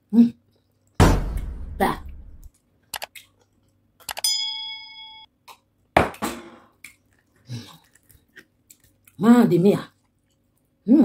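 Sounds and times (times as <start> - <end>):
soft chewing: 2.5 - 4.1, 6.8 - 10.9
bell-like ding: 4.2 - 5.3.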